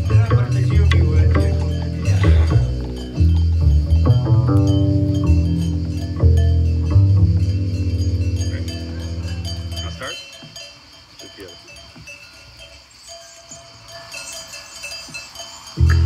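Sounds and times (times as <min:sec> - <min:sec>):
bass clarinet and double bass note: 0:00.0 - 0:09.8, 0:15.8 - 0:16.0
sheep bells clinking: 0:00.0 - 0:16.0.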